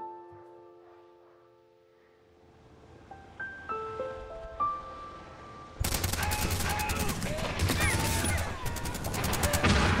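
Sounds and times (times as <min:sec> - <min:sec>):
rapid gunfire: 0:05.8 - 0:10.0.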